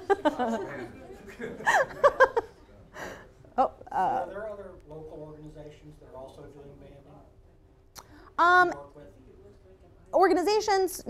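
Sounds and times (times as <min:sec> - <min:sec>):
woman and audience laughing: 0:00.0 - 0:02.5.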